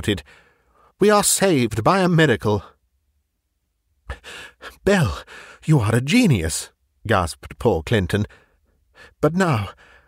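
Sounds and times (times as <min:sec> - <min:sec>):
man speaking: 0:00.0 - 0:00.2, 0:01.0 - 0:02.8, 0:04.6 - 0:08.3, 0:09.1 - 0:09.8
man gasping in-breaths: 0:00.2 - 0:01.0, 0:04.1 - 0:05.6, 0:09.8 - 0:10.0.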